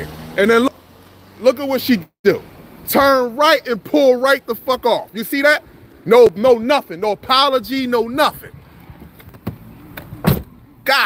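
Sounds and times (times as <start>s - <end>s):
car door shutting: 8.8s - 10.6s.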